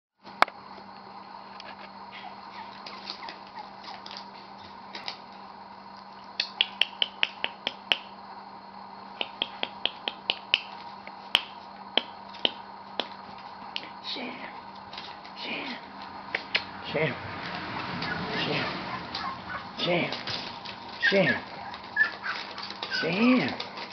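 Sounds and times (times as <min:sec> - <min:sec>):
faint steady hum: 0:00.2 - 0:23.9
sharp clicks: 0:06.4 - 0:08.1.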